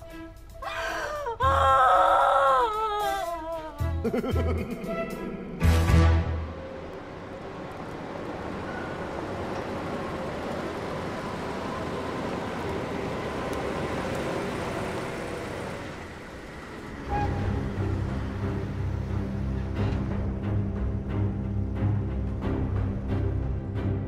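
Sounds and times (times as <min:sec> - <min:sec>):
tense drum-led music: 0:00.0 - 0:07.2, 0:17.3 - 0:24.0
car engine and tyres driving: 0:04.0 - 0:24.0.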